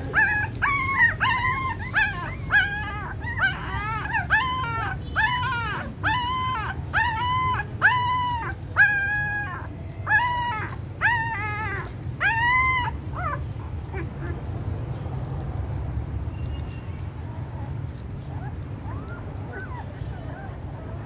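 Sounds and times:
puppies whining: 0.0s - 14.5s, 17.0s - 21.0s.

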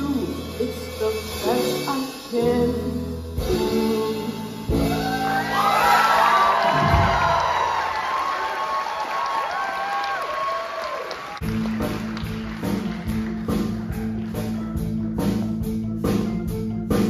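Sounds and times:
keyboard-led band with drum beat: 0.0s - 7.4s, 11.4s - 17.0s
audience applauding and cheering: 4.8s - 15.0s.

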